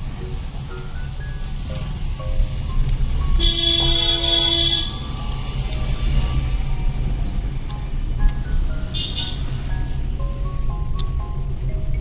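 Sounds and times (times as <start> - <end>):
music playing: 0.0 - 12.0
vehicle driving rumble: 0.0 - 12.0
vehicle horn blast: 3.4 - 5.0, 8.9 - 9.5.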